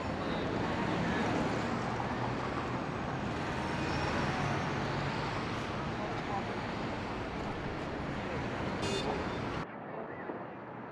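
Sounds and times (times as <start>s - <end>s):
passing traffic: 0.0s - 9.7s.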